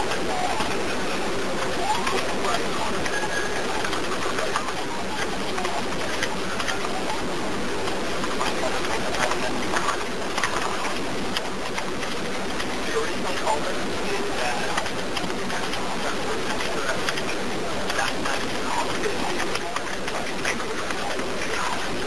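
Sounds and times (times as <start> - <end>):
telephone line hiss: 0.0 - 7.8
faint indistinct voices: 0.0 - 22.0.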